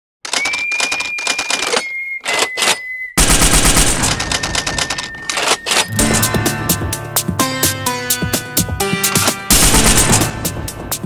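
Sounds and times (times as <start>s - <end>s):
steady high whistle tone: 0.3s - 3.2s, 4.0s - 5.9s.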